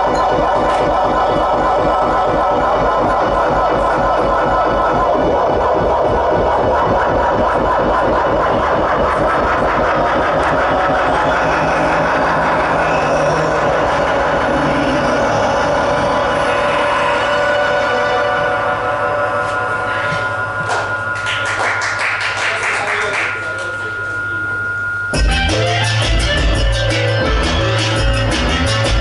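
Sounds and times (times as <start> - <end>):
bright synth bursts: 0.0 - 28.8
fast-pulsing synthesizer music: 0.0 - 29.0
high held tone: 0.0 - 29.0
low synth drone: 0.0 - 29.0.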